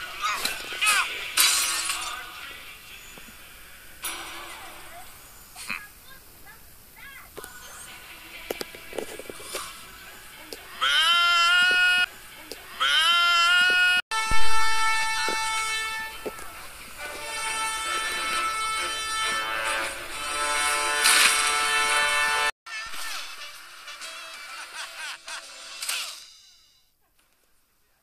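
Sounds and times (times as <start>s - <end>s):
film music with horn-like chords: 14.1s - 25.9s.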